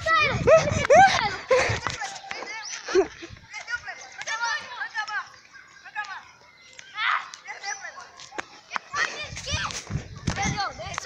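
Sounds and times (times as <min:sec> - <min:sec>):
children shouting and shrieking: 0:00.0 - 0:11.0.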